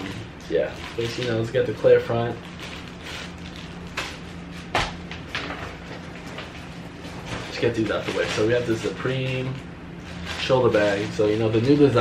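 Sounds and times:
plastic packaging rustling: 0.0s - 12.0s
steady low hum: 0.0s - 12.0s.

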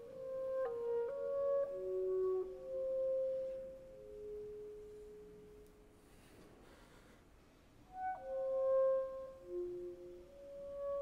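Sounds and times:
clarinet playing long notes: 0.0s - 5.9s, 7.9s - 11.0s.

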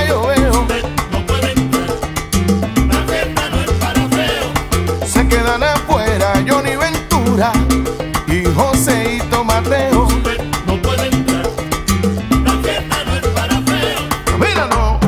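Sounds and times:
salsa band playing: 0.0s - 15.0s.

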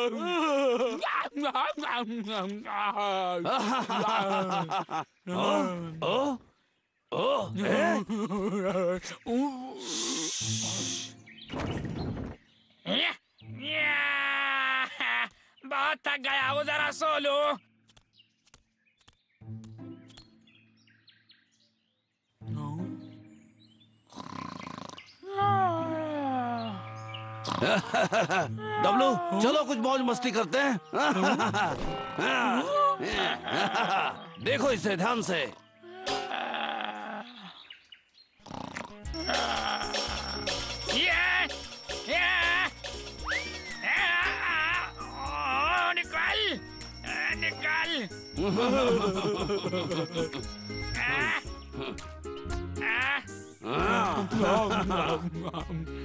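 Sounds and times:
cartoon hissing effect: 9.7s - 11.2s
cartoon music: 39.1s - 56.0s
long cry-like tone: 39.2s - 40.1s
background music with low beat: 48.2s - 52.8s, 53.8s - 56.0s.

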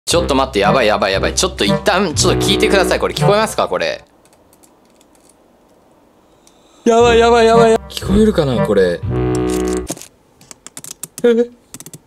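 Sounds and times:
lobster clicking and scratching: 10.0s - 12.0s.

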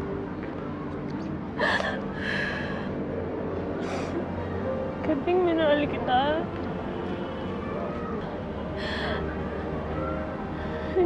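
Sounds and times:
woman sobbing: 1.6s - 2.7s
sharp gasping breath: 8.8s - 9.3s.

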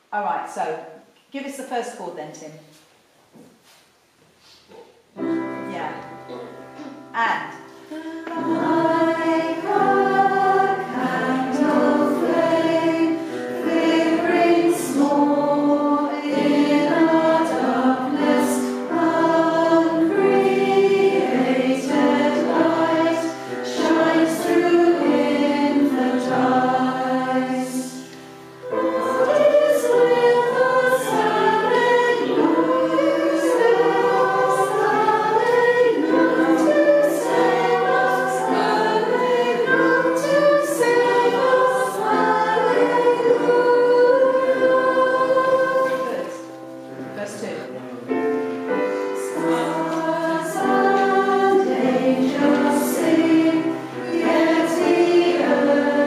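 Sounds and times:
choir singing a carol: 7.9s - 46.9s, 48.0s - 56.0s.

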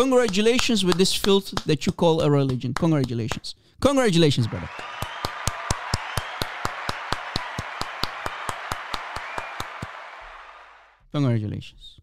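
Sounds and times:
rhythmic clapping: 0.0s - 3.5s, 4.4s - 10.9s
crowd noise: 4.5s - 11.0s.

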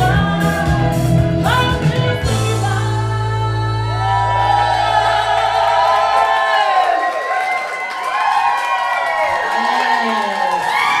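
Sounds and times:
audience cheering and shouting: 3.7s - 11.0s.

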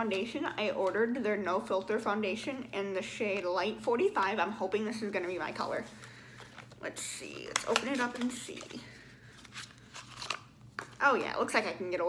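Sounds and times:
packaging clicks and rustles: 6.0s - 11.0s.

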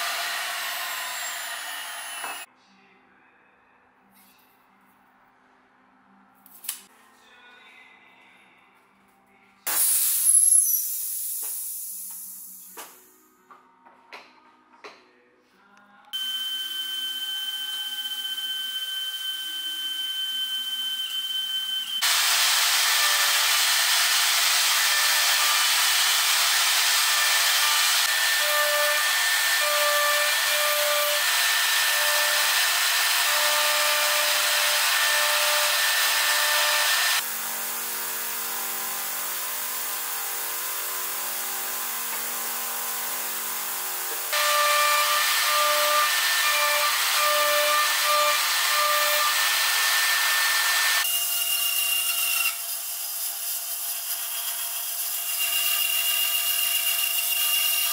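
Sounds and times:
router spindle high whine: 16.2s - 23.8s.

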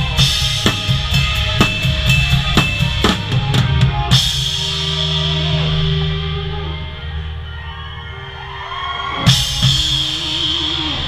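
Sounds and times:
rock band held chords: 0.0s - 11.0s.

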